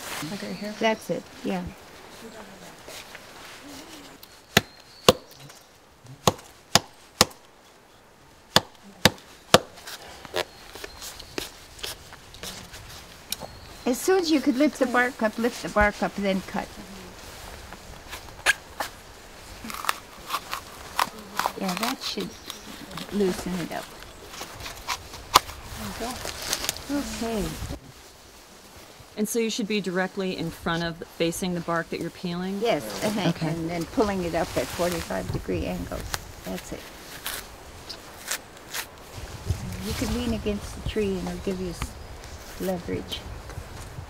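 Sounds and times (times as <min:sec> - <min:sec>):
quiet voices: 0:00.2 - 0:04.3, 0:14.1 - 0:18.0, 0:20.9 - 0:23.8, 0:32.5 - 0:35.0
hatchet chopping wood: 0:04.5 - 0:05.4, 0:06.2 - 0:07.5, 0:08.5 - 0:09.8.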